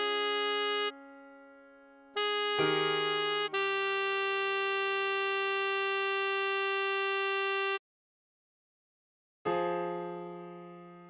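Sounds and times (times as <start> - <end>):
synthetic saxophone note: 0.0 - 7.8
electric piano chord: 0.9 - 4.9.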